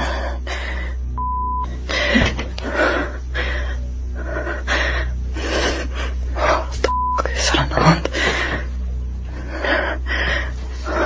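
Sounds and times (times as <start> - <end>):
woman breathing hard and gasping: 0.0 - 6.9, 8.0 - 11.0.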